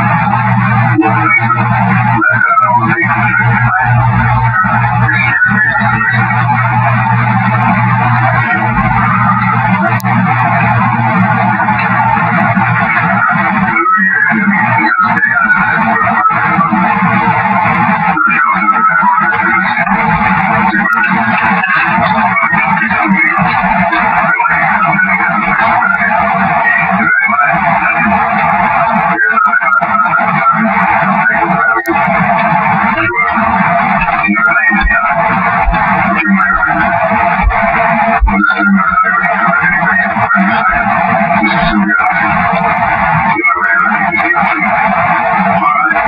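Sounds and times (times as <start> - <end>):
choppy low buzz: 0.0 - 29.2, 29.9 - 46.0.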